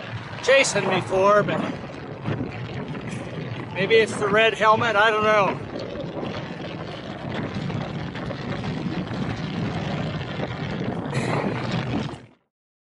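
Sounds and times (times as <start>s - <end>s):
wind roar on microphone: 0.0s - 12.4s.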